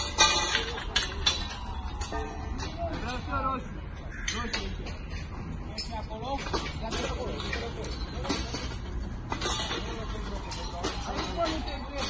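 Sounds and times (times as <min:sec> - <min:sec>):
metal scaffolding tubes clanking: 0:00.0 - 0:12.0
workers' voices: 0:00.0 - 0:12.0.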